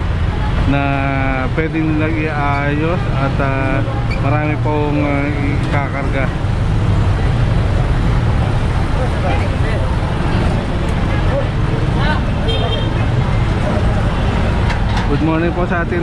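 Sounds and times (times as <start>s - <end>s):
street traffic: 0.0s - 16.0s
truck engines running: 0.0s - 16.0s
voices in background: 0.2s - 16.0s.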